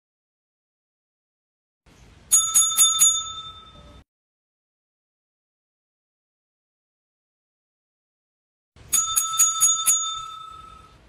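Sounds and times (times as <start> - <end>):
desk service bell dinging: 2.3 - 4.0, 8.9 - 11.0.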